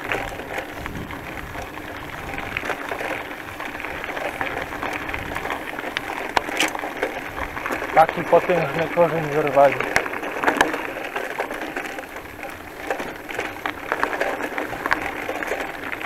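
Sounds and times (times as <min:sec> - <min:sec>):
bicycle tyres on gravel: 0:00.0 - 0:16.0.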